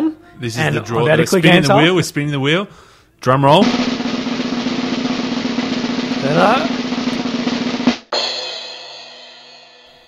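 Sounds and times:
drum roll: 3.5s - 10.0s
crash cymbal ringing: 8.2s - 10.0s.

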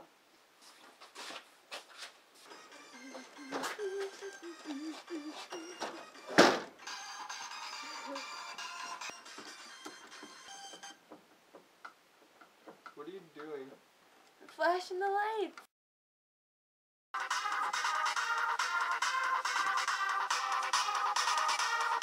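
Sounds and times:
electronic music: 2.5s - 10.2s, 17.2s - 22.0s
loud thump: 6.3s - 6.8s.

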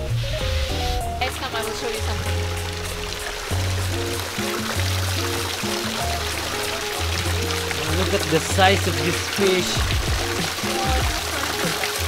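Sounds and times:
background music with bass line: 0.0s - 12.0s
water pouring into pond: 0.0s - 12.0s.

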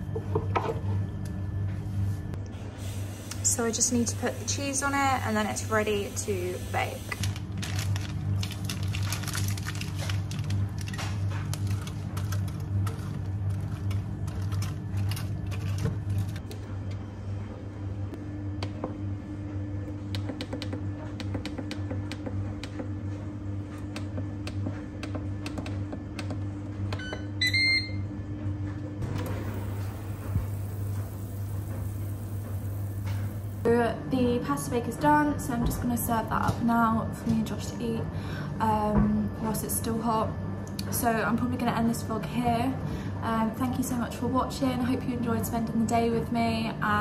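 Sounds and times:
steady low hum: 0.0s - 47.0s
plastic bag rustling: 7.0s - 16.4s
air fryer control panel beeps: 26.9s - 28.1s.

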